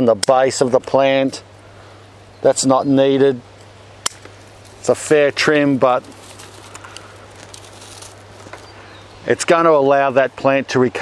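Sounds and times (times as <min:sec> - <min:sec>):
steady low hum: 0:00.0 - 0:11.0
pruning snips clicking: 0:04.0 - 0:04.4.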